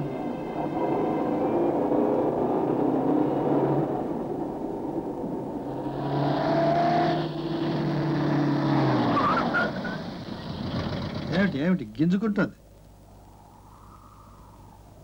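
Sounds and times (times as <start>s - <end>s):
car engine running: 0.0s - 11.6s
short rising squeal: 5.8s - 10.2s.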